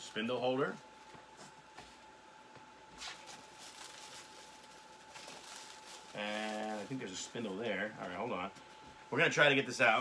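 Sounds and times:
cardboard and foam packing rustling: 2.9s - 8.8s.

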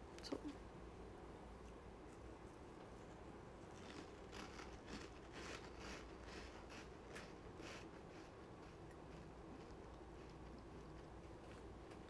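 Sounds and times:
soft chewing of food: 1.3s - 12.0s.

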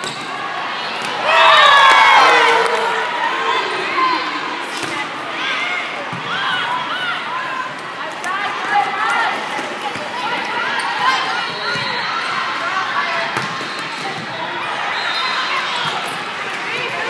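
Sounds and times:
indistinct voices in a hall: 0.0s - 17.0s.

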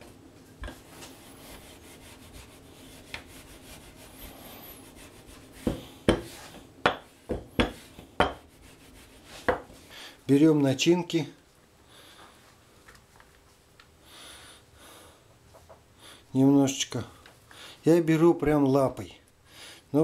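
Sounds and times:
rolling pin rubbing on dough: 0.6s - 9.8s
rolling pin knocking: 5.6s - 8.4s.

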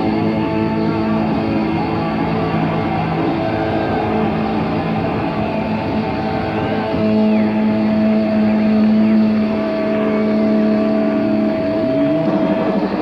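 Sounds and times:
distorted electric guitar note: 0.0s - 13.0s
live hard rock band: 0.0s - 13.0s.

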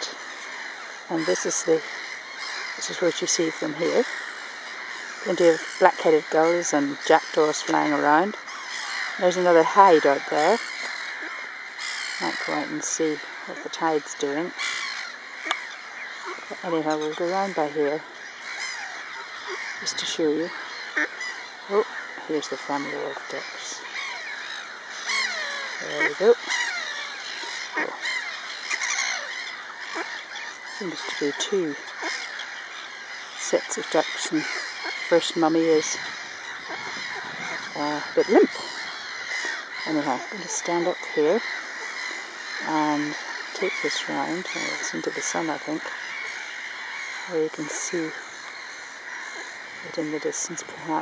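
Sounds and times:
birds calling: 0.0s - 51.0s.

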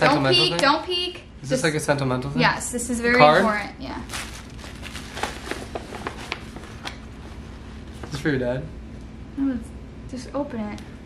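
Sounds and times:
paper rustling and crinkling: 4.0s - 8.2s.

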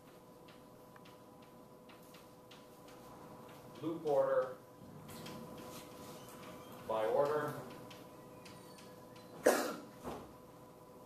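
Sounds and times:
steady faint hum: 0.0s - 11.0s.

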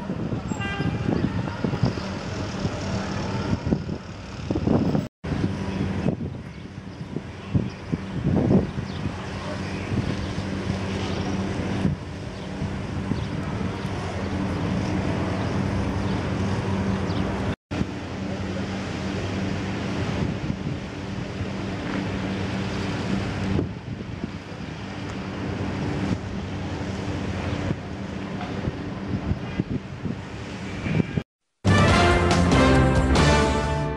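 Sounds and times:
wind noise on microphone: 0.0s - 18.0s, 19.6s - 31.3s
vehicle engine humming: 1.4s - 6.2s.

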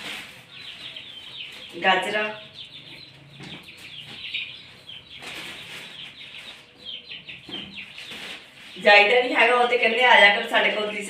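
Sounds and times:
plastic bag rustling: 0.0s - 2.1s, 4.9s - 6.8s, 7.8s - 9.1s
vegetables being handled: 0.0s - 2.4s, 5.1s - 6.8s, 7.4s - 9.3s
birds chirping: 0.0s - 11.0s.

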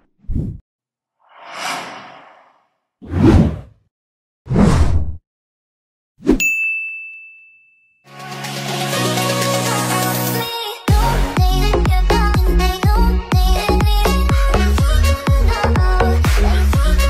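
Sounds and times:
soft whoosh: 1.3s - 2.7s
bright ding: 6.4s - 8.1s.

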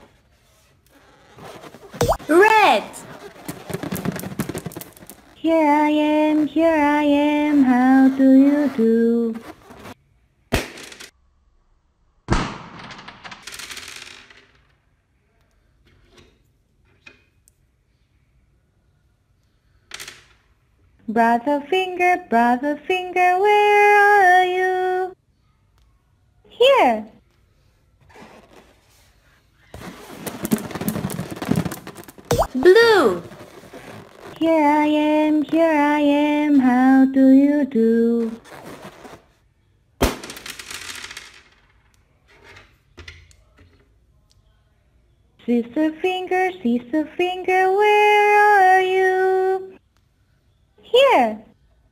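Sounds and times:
candies rustling on tabletop: 0.0s - 7.8s, 28.0s - 34.5s
crackling: 0.7s - 10.0s, 29.6s - 35.8s
balloon popping: 1.0s - 10.9s, 29.7s - 35.6s.

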